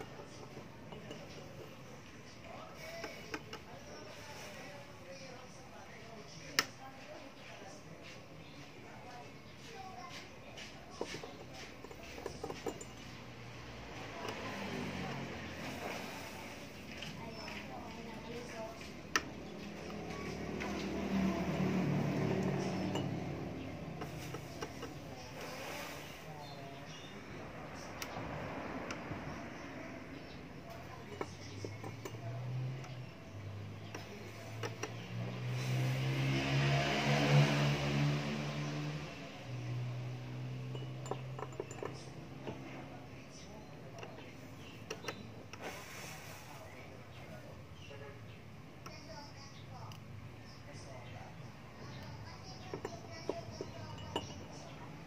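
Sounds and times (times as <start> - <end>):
gas torch: 45.6 - 46.6.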